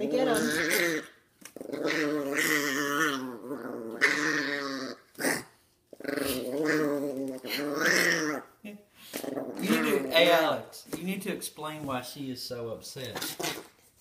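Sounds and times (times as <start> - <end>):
small dog growling: 0.0 - 10.5, 13.2 - 13.7.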